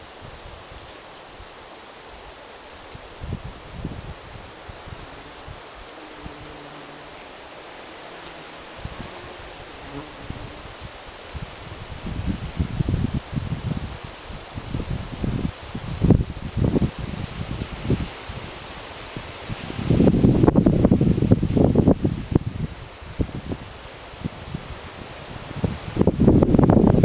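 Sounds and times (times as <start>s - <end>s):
wind buffeting microphone: 3.1s - 5.6s, 8.8s - 27.0s
flying insect buzzing: 3.1s - 26.2s.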